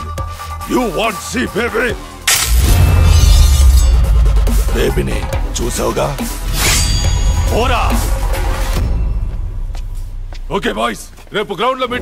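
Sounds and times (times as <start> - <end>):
loud shattering crash: 2.3 - 4.9
deep bass boom: 2.5 - 6.5.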